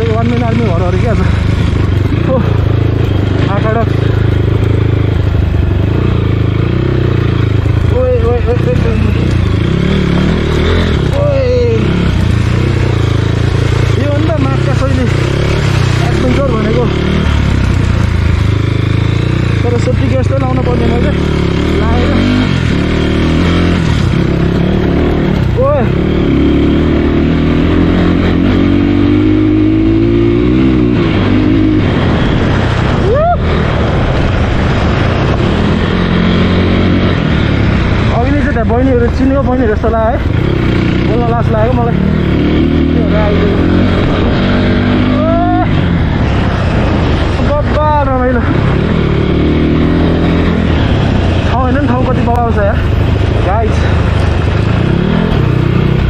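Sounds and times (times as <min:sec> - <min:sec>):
dirt bike engine running: 0:00.0 - 0:56.0
person speaking: 0:12.9 - 0:17.3.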